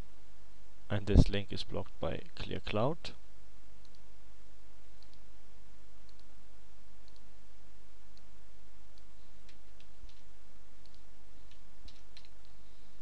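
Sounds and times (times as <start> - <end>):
low hum and hiss: 0.0 - 13.0.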